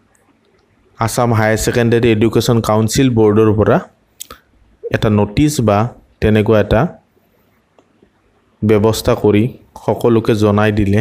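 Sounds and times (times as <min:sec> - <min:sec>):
man speaking: 0:01.0 - 0:04.0, 0:04.8 - 0:07.1, 0:08.6 - 0:11.0.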